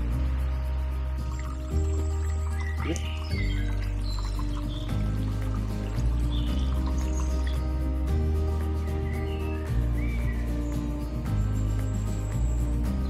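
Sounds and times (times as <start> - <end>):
background music with low chords: 0.0 - 13.0.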